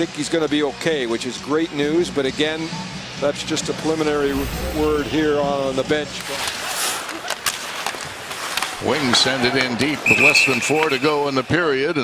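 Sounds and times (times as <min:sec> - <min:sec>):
skates hissing on ice: 0:06.2 - 0:11.4.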